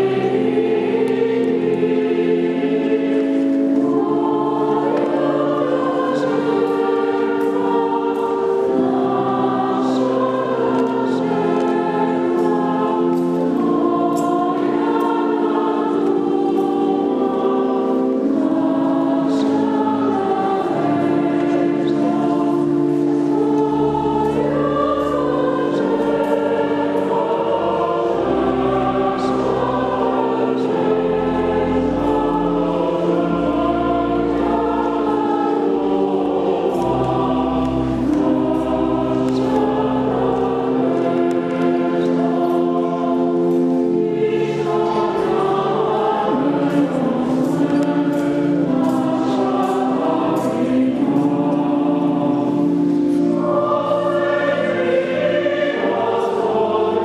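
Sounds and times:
church choir singing a hymn: 0.0 - 57.0.

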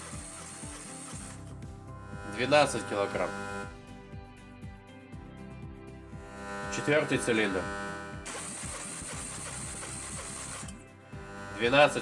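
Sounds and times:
engine cranking without firing: 0.0 - 1.6, 7.2 - 12.0.

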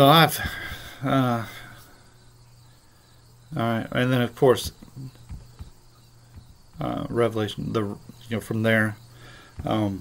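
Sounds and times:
faint low hum: 0.0 - 10.0
man speaking: 3.5 - 5.2, 6.7 - 9.0, 9.6 - 10.0
soft low knocks: 4.2 - 10.0.

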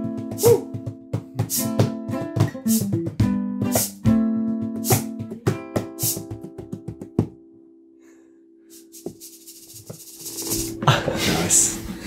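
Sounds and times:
hand slap on guitar case: 0.0 - 7.4.

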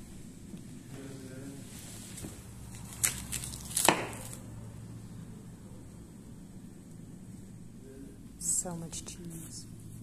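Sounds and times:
cling film crackling: 2.6 - 4.4.

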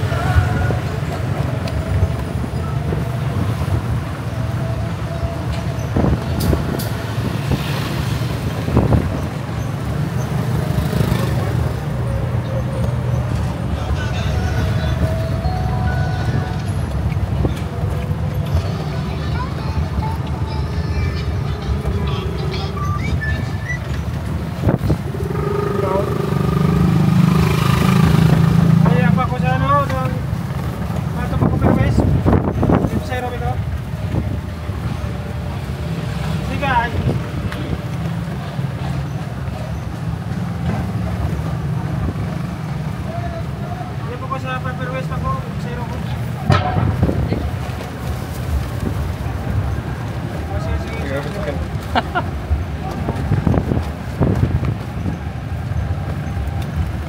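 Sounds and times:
tyres rumbling on road: 0.0 - 57.0.

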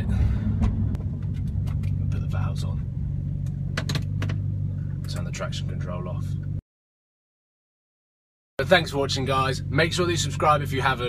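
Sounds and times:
car engine idling: 0.0 - 6.6, 8.6 - 11.0.

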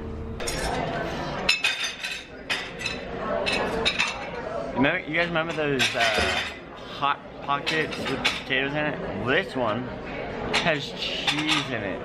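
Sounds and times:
dishes and cutlery clinking: 0.4 - 4.5, 5.2 - 6.7, 7.5 - 8.8, 10.5 - 12.0
background chatter: 0.4 - 12.0.

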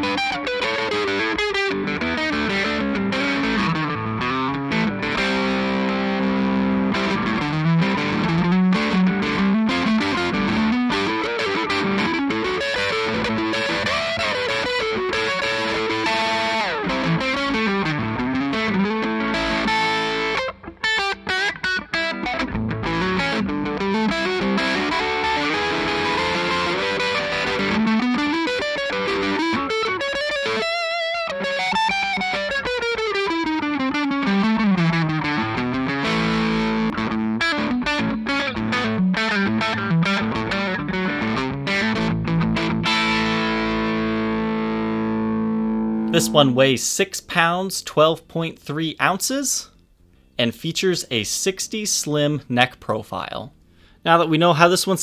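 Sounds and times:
electric guitar through amplifier: 0.0 - 51.4.

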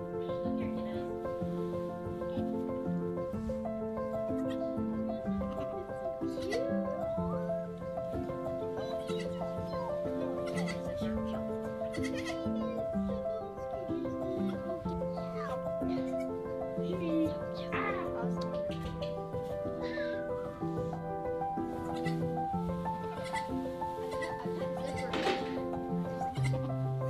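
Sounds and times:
background music: 0.0 - 27.0
goat kids bleating: 4.3 - 4.8, 5.4 - 7.0, 8.8 - 12.8, 14.4 - 16.4, 19.8 - 20.3, 21.8 - 22.3, 23.1 - 26.7.

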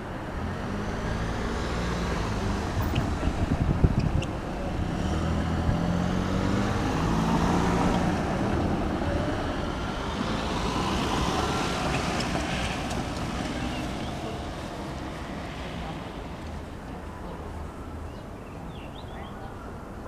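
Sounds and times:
traffic driving past: 0.0 - 20.0.

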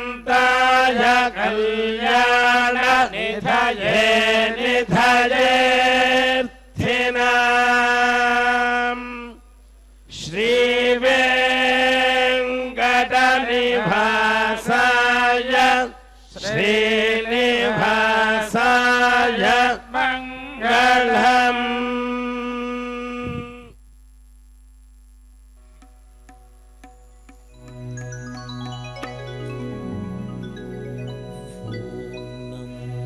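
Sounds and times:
mantras chanted: 0.0 - 9.5, 10.1 - 23.8.

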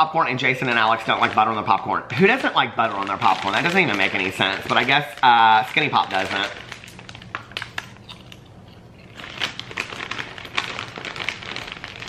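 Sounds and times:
popcorn chewing crunches: 0.6 - 12.0.

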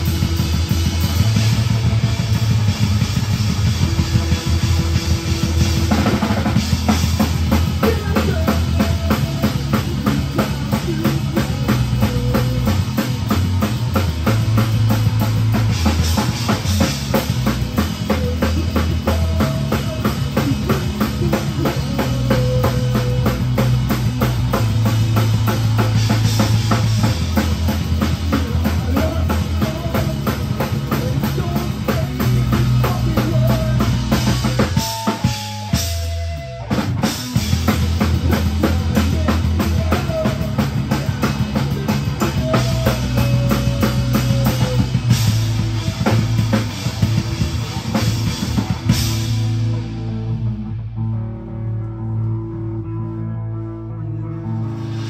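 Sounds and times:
drum kit: 0.0 - 50.8
rock band playing: 0.0 - 55.0.

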